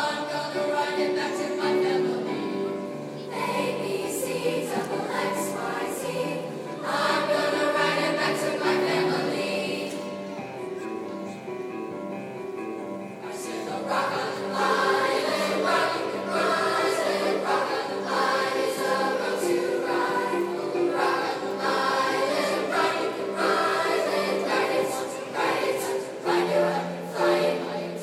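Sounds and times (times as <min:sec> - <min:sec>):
children's choir singing: 0:00.0 - 0:11.4, 0:13.2 - 0:28.0.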